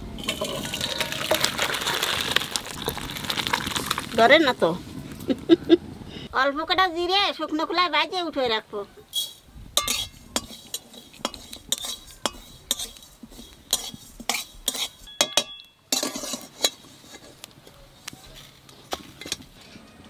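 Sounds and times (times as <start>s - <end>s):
metal spatula scraping a wok: 9.1s - 17.5s.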